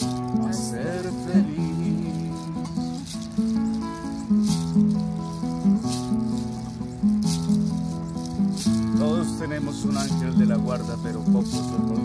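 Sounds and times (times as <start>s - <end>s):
classical guitar strumming: 0.0s - 12.0s.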